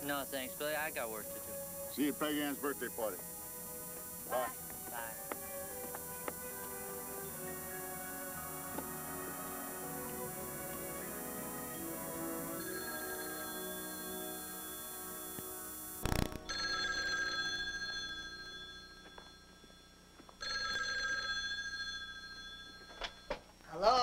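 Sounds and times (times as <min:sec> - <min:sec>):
soft background music: 0:00.0 - 0:19.4
telephone bell ringing: 0:12.4 - 0:23.5.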